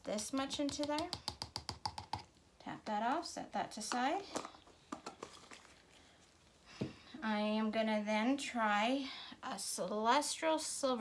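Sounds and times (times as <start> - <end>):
plastic jar clicking and knocking: 0.4 - 2.3.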